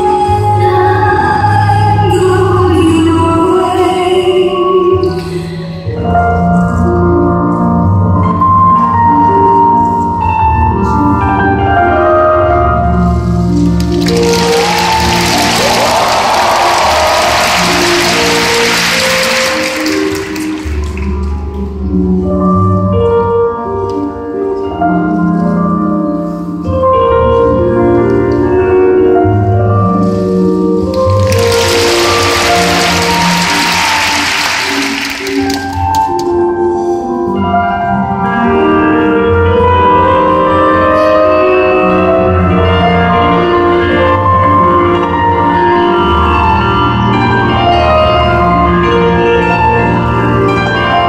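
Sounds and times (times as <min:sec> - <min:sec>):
program music over loudspeakers: 0:00.0 - 0:51.0
crowd applause: 0:13.8 - 0:21.6, 0:31.0 - 0:36.2.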